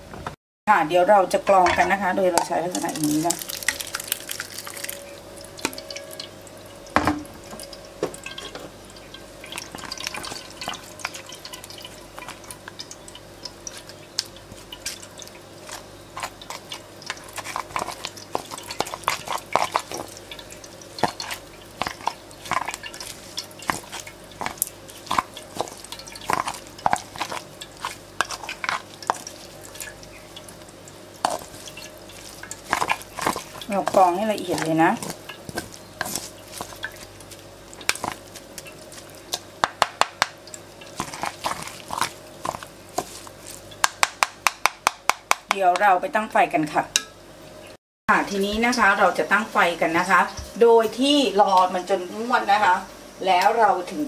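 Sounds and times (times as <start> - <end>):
sauce dripping through a sieve: 1.2 - 46.0.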